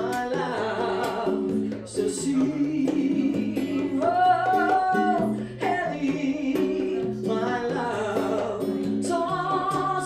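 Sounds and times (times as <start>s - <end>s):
plucked guitar: 0.0s - 10.0s
woman singing into microphone: 0.0s - 10.0s.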